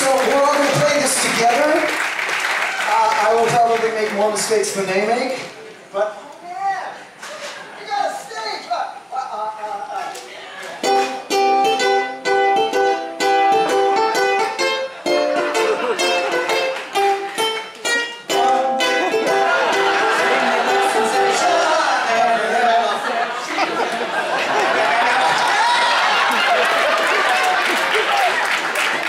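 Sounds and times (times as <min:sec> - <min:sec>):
ukuleles strumming: 0:10.1 - 0:24.7.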